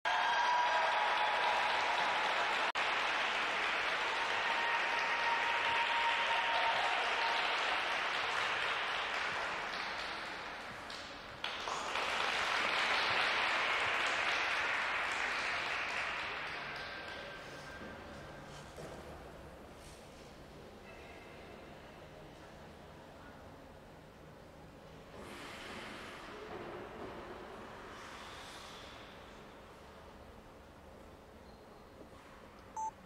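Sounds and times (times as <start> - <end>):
audience applauding: 0.1 - 17.7.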